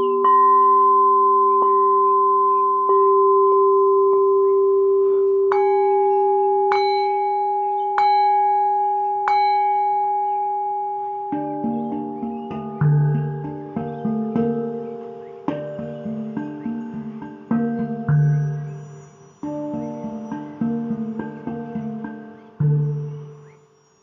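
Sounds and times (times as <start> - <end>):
singing bowls ringing: 0.0 - 24.0.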